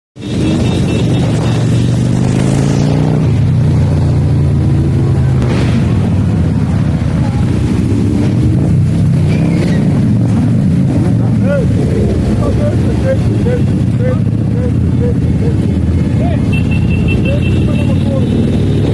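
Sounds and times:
motorcycle engine revving: 0.2s - 18.9s
motorcycle engines droning: 0.2s - 18.9s.

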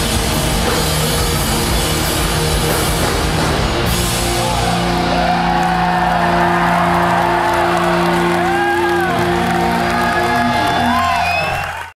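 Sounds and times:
audience whooping and whistling: 4.5s - 12.0s.

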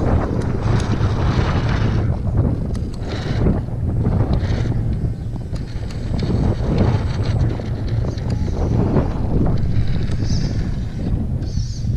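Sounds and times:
rc car climbing rock: 0.0s - 11.9s
wind buffeting microphone: 0.0s - 11.9s.

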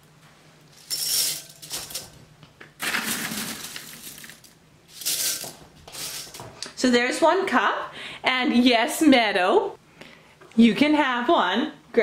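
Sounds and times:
dried beans rustling and clattering: 0.7s - 2.2s, 2.8s - 6.5s.

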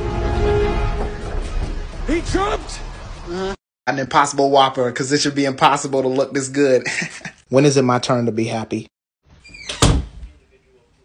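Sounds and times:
door shutting with a thud: 9.5s - 10.3s.

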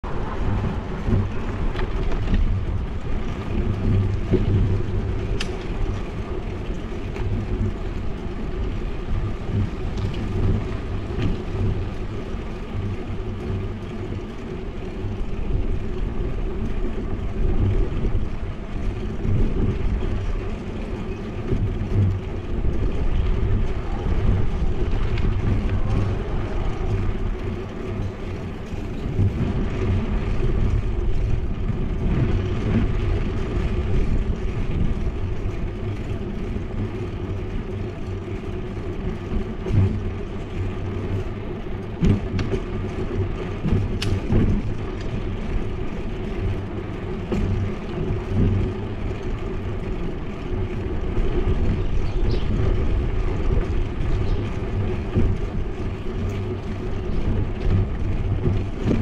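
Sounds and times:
road noise: 0.0s - 59.0s
wind rumble: 0.0s - 59.0s.

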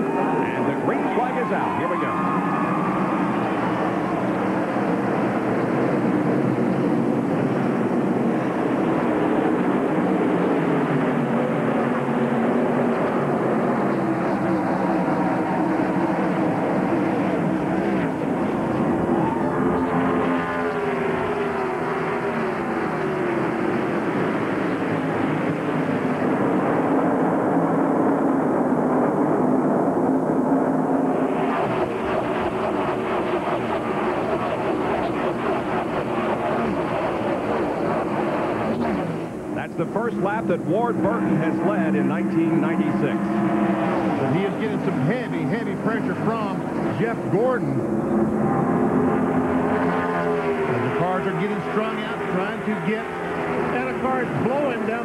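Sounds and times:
cars passing close by: 0.0s - 29.5s, 30.8s - 55.0s
race car engines at full throttle: 0.0s - 55.0s.

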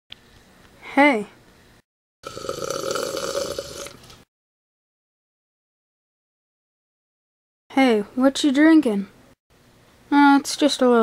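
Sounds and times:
person slurping and gulping: 2.2s - 4.1s.

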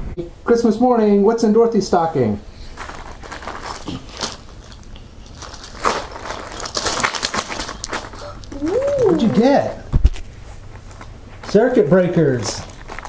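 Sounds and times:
metal parts clinking: 2.8s - 8.6s
small metal parts jingling: 2.8s - 8.6s.

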